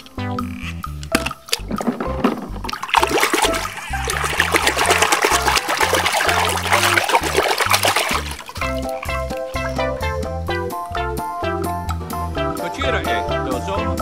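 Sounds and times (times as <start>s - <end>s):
background music with bass: 0.0s - 14.0s
toy car splashing in water: 1.1s - 9.5s.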